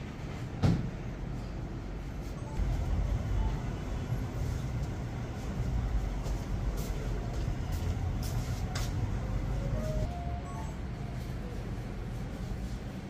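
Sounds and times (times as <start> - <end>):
steady low rumble: 2.5 - 13.0.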